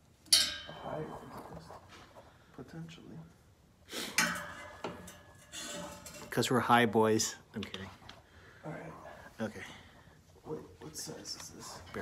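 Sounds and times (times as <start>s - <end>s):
metallic handling and rattling: 0.2s - 1.9s, 4.2s - 6.6s
metal clank: 0.3s - 1.4s, 4.1s - 6.4s.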